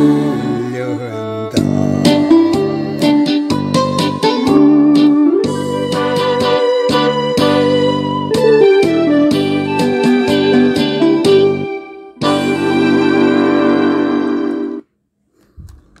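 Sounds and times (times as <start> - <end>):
held chord: 0.0 - 14.8
keyboard melody: 0.0 - 14.9
steady beat: 1.4 - 14.8.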